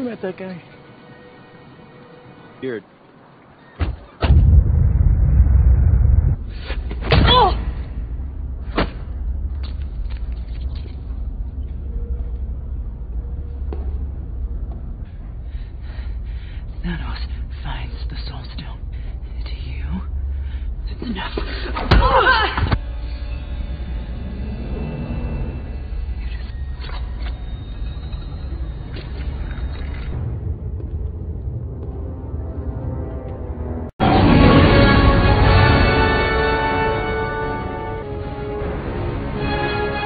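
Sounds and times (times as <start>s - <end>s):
deep rumbling drone: 4.2s - 6.6s, 7.5s - 21.8s, 22.7s - 39.4s
deep steady rumble: 4.3s - 6.6s, 7.5s - 21.8s.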